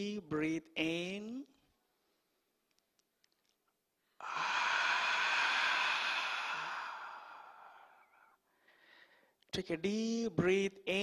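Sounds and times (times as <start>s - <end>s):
person exhaling through mouth: 4.2s - 8.9s.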